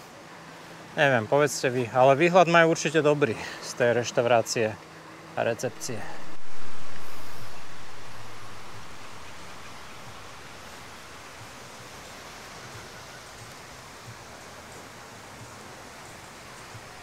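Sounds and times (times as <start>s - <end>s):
breeze hiss: 0.0s - 17.0s.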